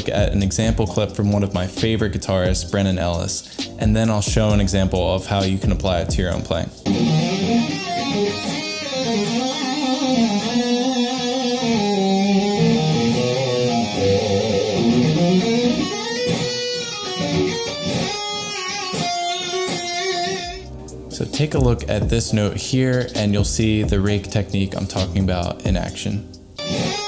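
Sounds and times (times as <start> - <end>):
pick raking muted strings: 0.0 - 25.9
electric guitar lead: 6.8 - 21.8, 26.3 - 27.0.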